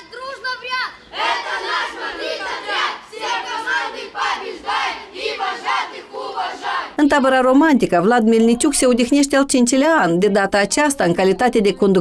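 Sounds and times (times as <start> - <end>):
children chanting: 0.0 - 7.0.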